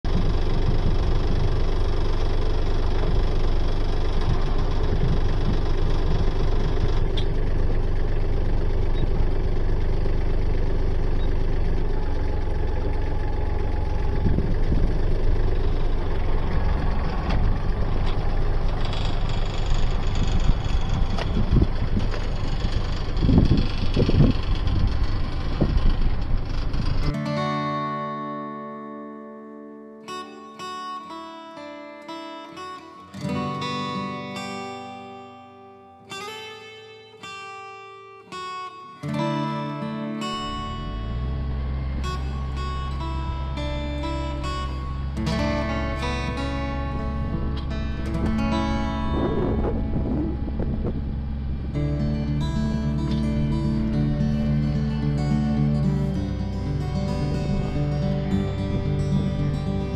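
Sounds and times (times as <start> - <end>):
tractor diesel engine running: 0.0 - 27.2, 39.7 - 59.9
acoustic guitar music: 0.0 - 59.9.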